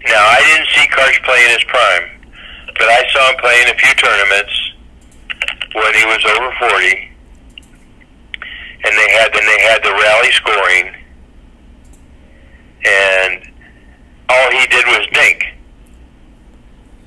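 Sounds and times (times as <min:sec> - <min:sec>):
person talking over telephone: 0:00.0 - 0:07.2, 0:08.4 - 0:11.1, 0:12.8 - 0:13.6, 0:14.3 - 0:15.6.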